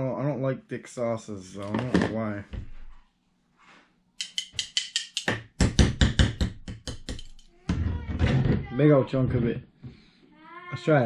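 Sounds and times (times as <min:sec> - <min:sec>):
glass bottle tapping on spoon: 0:04.2 - 0:05.4.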